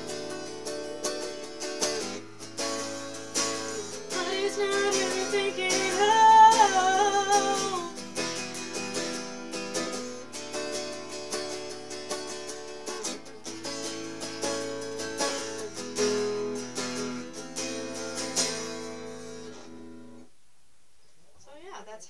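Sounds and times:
raspy electric guitar strumming: 0.0 - 20.2
person singing: 3.7 - 8.0.

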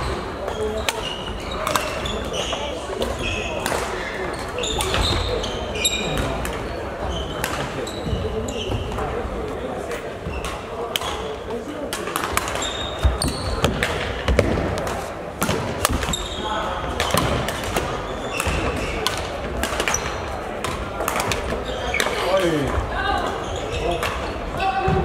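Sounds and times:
shoes squeaking on floor: 0.0 - 9.1, 10.2 - 11.3, 12.5 - 15.2, 16.0 - 16.8, 18.0 - 19.1, 21.6 - 24.9
rackets striking shuttlecocks: 0.5 - 5.3, 11.9 - 16.2, 16.9 - 22.8.

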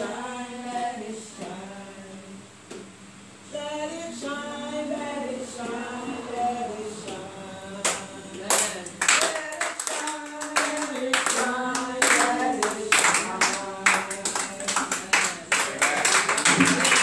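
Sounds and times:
group of voices singing: 0.0 - 17.0
hand clapping: 7.8 - 17.0.

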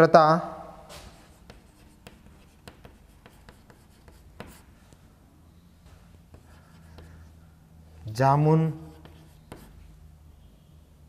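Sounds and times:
chalk writing on a chalkboard: 1.2 - 4.8, 6.3 - 7.4, 8.8 - 10.0.

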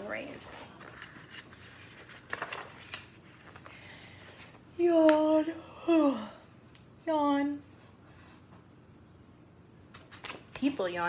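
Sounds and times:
book pages rustling: 0.2 - 5.2, 9.9 - 10.9.

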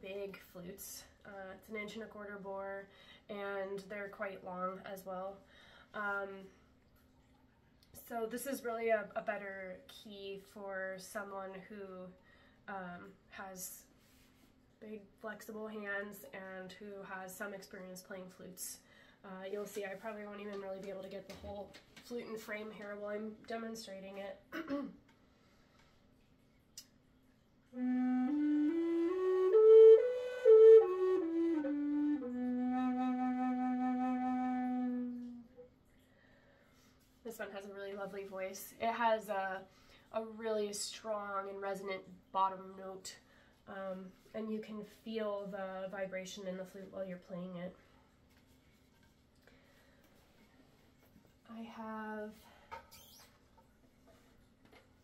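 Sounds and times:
wooden flute playing a scale: 27.8 - 35.7.

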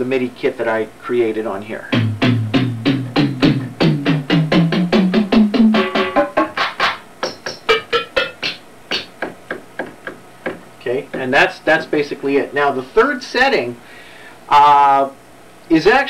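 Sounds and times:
high-pitched percussion hits: 1.9 - 10.6
synthesizer drum notes: 1.9 - 11.4.

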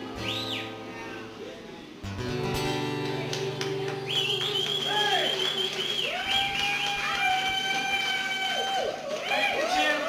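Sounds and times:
acoustic guitar chord: 0.0 - 4.8.

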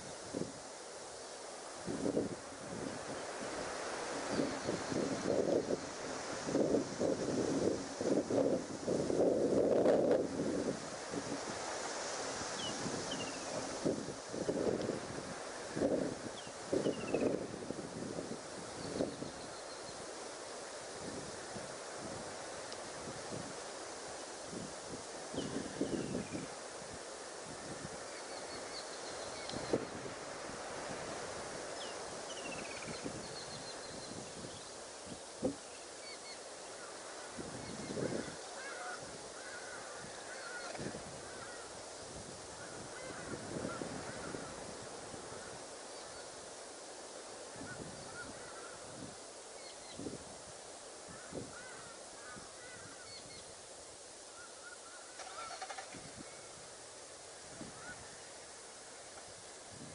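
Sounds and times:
outdoor hiss: 0.0 - 59.9
short bird calls: 54.4 - 56.4.

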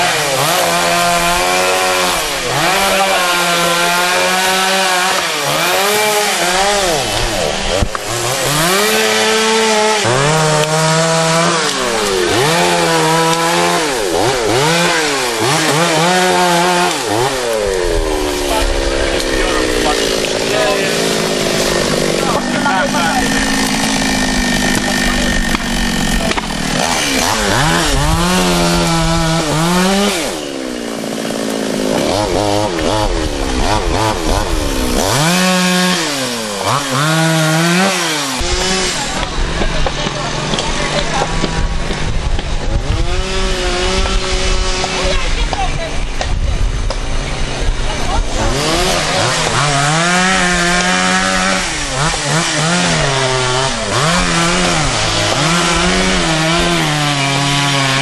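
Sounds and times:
chainsaw cutting wood: 0.0 - 58.0.

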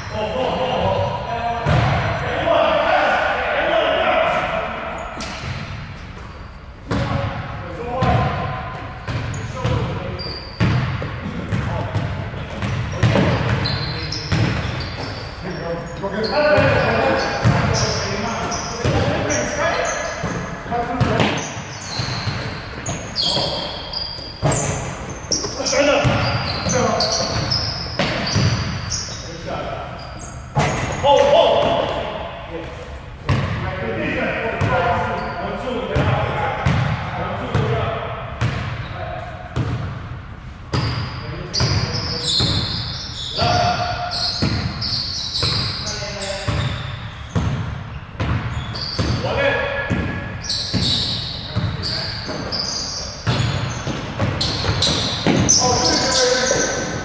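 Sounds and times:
sneakers squeaking: 0.0 - 2.2, 4.2 - 57.0
players calling out: 6.9 - 32.8, 48.5 - 57.0.

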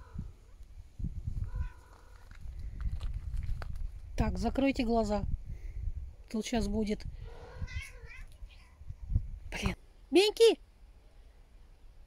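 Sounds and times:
cat yowling: 7.4 - 8.3.

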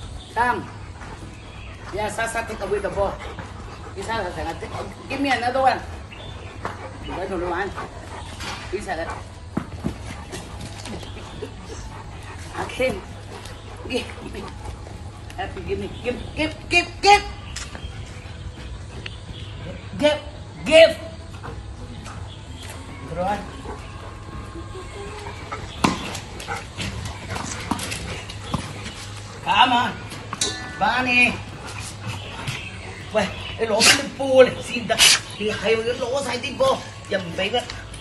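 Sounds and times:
dogs playing: 0.0 - 38.0.

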